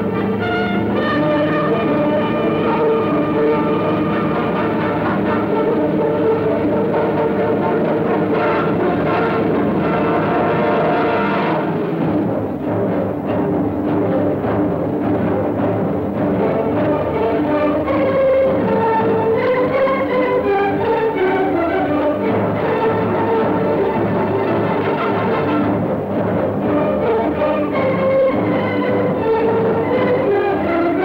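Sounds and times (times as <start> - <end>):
orchestral brass chords: 0.0 - 31.0
timpani drum strokes: 0.0 - 31.0.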